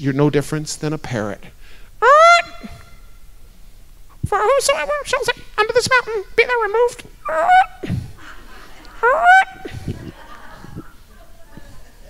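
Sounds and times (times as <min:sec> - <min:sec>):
man shouting into microphone: 0:04.2 - 0:08.0.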